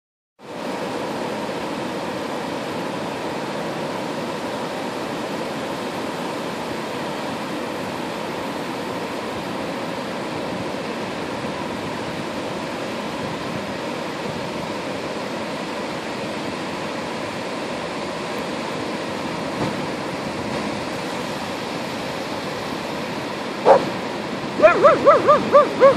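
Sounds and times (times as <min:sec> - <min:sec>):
ocean surf breaking: 0:00.4 - 0:25.9
hooting woo call: 0:24.6 - 0:25.9.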